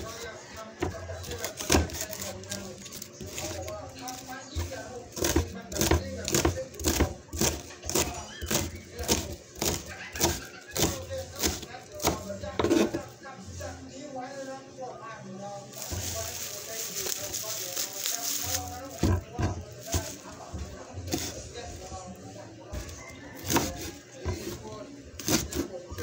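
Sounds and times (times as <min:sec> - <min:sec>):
kitchen knife chopping vegetables: 0:00.0 - 0:13.1, 0:15.8 - 0:22.0, 0:22.7 - 0:26.0.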